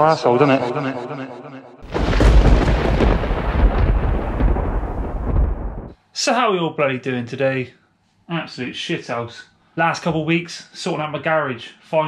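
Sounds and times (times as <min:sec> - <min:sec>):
loud deep rumbling: 0:01.8 - 0:06.0.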